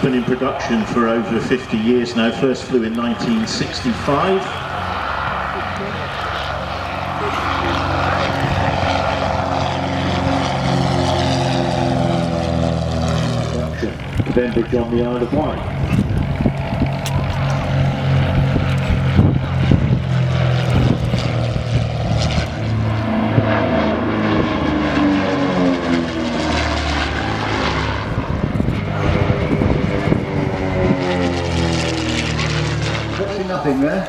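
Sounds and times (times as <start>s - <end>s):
propeller engines droning: 0.0s - 34.0s.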